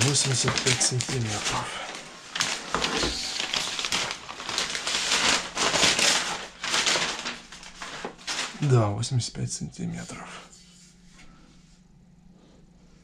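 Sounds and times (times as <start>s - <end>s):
packaging rustling and crinkling: 0.0s - 8.8s.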